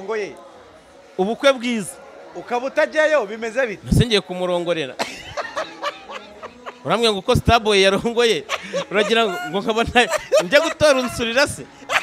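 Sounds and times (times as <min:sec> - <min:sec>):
person speaking: 0:08.4 - 0:12.0.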